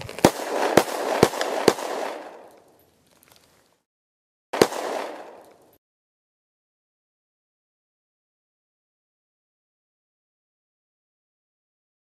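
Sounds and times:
sharp bangs: 4.6s - 5.8s.

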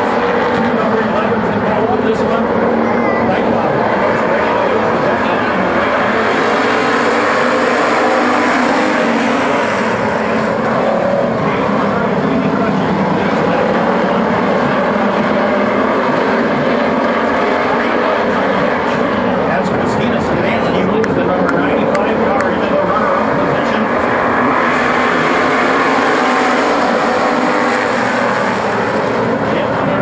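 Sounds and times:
race car engines roaring: 0.0s - 30.0s.

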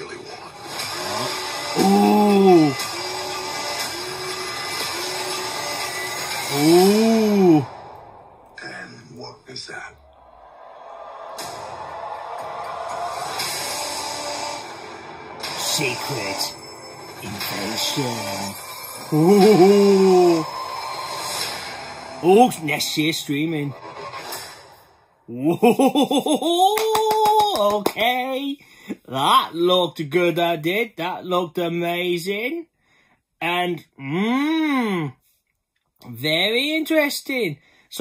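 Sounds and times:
man's drawn-out ooh: 1.2s - 2.8s, 6.5s - 7.9s, 19.1s - 20.5s.

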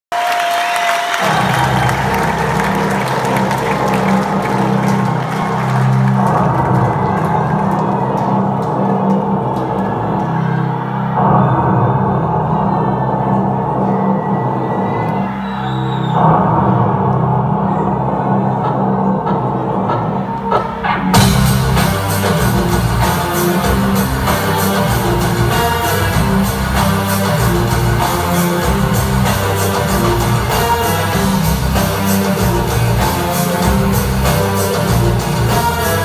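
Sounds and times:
crowd cheering: 0.0s - 18.6s.

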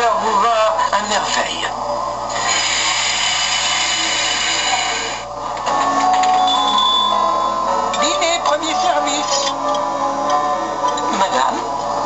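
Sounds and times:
steady ringing tones: 3.3s - 12.0s.

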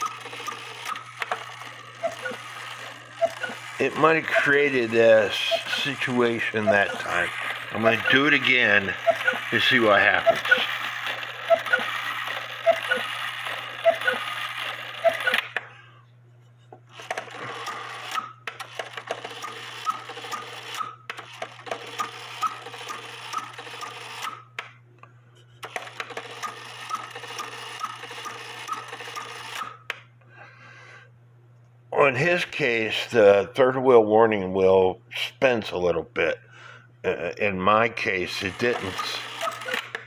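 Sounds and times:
clock strike train whirring: 0.0s - 15.6s, 38.4s - 40.0s.

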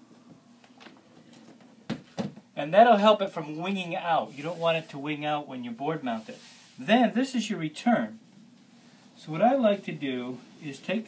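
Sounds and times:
iron rustling over fabric: 4.2s - 7.2s.

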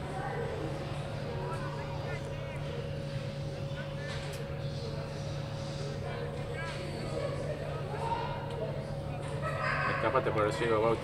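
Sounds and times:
distant indistinct voices: 0.0s - 11.0s
steady low hum: 0.0s - 11.0s.

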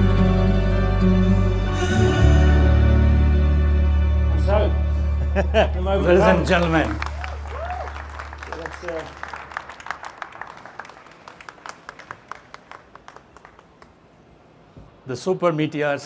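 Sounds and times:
low background music drone: 0.0s - 8.7s
crowd clapping: 6.1s - 14.2s.

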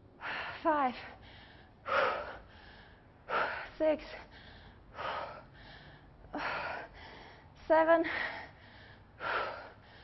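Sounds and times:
woman's hard breathy breath: 0.2s - 10.0s.

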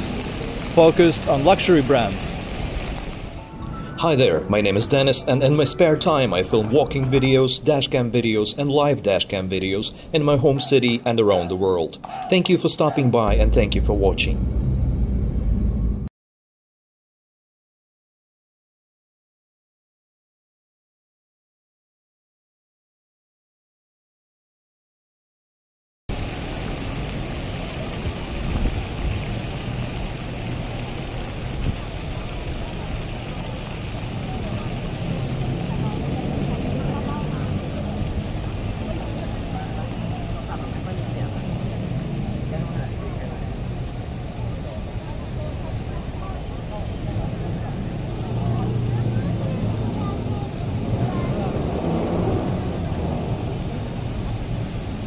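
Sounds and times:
traffic rumble: 0.0s - 16.1s, 26.1s - 55.0s
passers-by talking and walking: 27.6s - 55.0s.

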